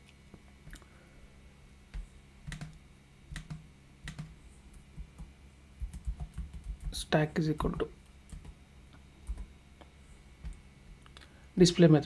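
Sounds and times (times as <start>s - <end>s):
keyboard typing: 1.9s - 8.6s, 9.2s - 9.5s, 10.4s - 10.6s.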